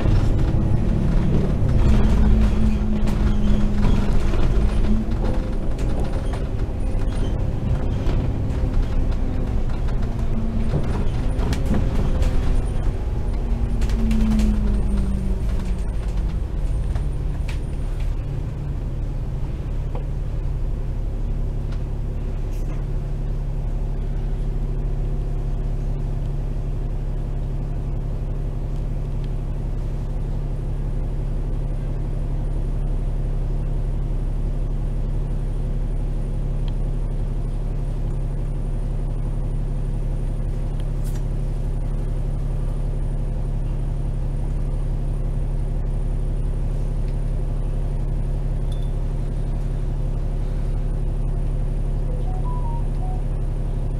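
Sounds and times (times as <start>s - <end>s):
bus diesel engine idling: 0.0s - 53.9s.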